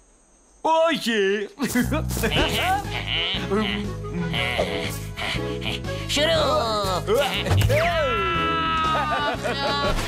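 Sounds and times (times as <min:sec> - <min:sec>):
cartoon background music: 0:01.6 - 0:10.0
cartoon character vocal sounds: 0:02.2 - 0:09.0.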